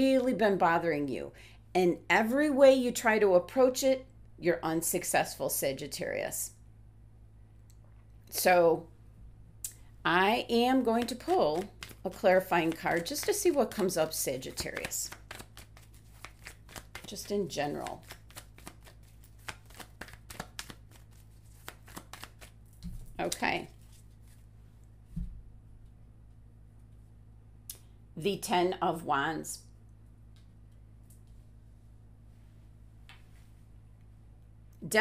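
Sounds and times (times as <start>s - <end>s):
cards being shuffled: 10.8s - 24.5s.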